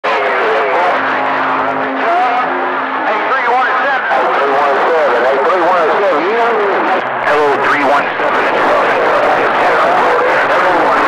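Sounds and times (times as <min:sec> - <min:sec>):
garbled warbling voices: 0:00.1 - 0:11.0
low heterodyne tone: 0:00.1 - 0:11.0
radio static hiss: 0:00.1 - 0:11.0.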